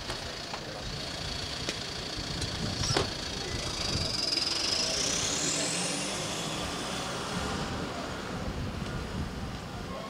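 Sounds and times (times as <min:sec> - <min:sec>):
car engine pulling away: 0:00.0 - 0:09.8
high whine rising in pitch: 0:03.4 - 0:07.8.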